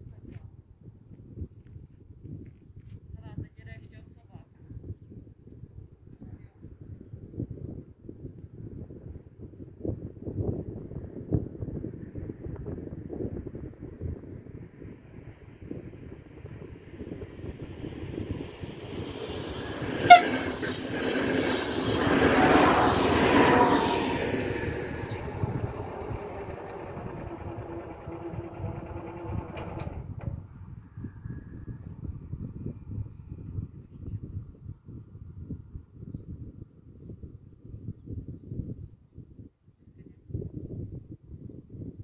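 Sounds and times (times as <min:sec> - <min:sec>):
train wheel and rail noise: 0:16.3 - 0:31.5.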